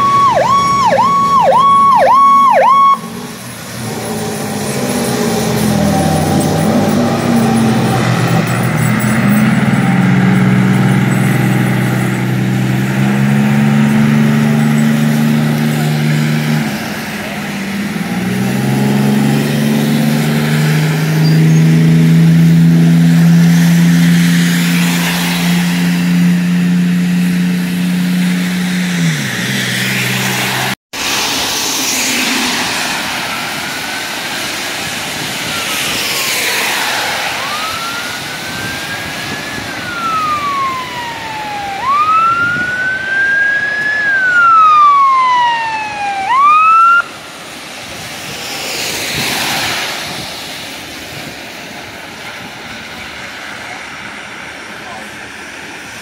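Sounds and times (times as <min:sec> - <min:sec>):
truck diesel engine pulling away: 0:00.0 - 0:46.4
tyres hissing on wet road: 0:02.6 - 0:46.4, 0:47.0 - 0:56.0.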